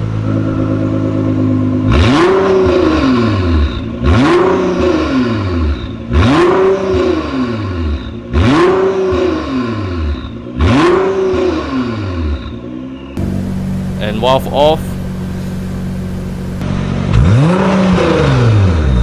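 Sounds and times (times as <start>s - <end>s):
car engine idling and revving: 0.0s - 19.0s.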